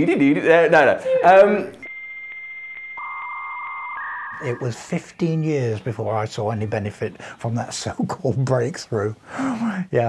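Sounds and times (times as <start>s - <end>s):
lower buzzing tone: 1.8s - 4.8s
high modem answer tone: 1.8s - 5.0s
telephone line noise: 1.8s - 5.0s.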